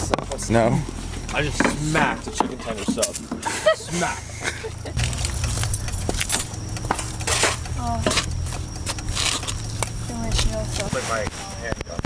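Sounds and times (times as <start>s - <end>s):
low steady hum: 3.6s - 11.9s.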